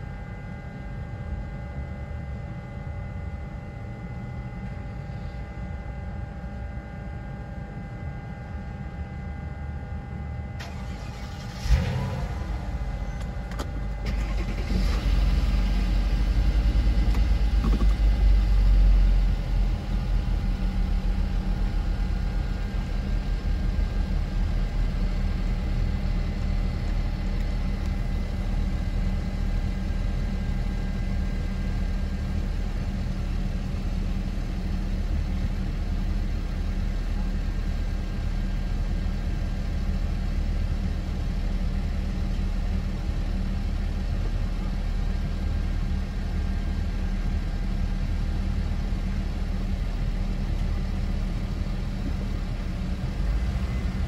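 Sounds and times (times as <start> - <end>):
car engine starting and running: 10.6 - 37.6, 38.2 - 54.0.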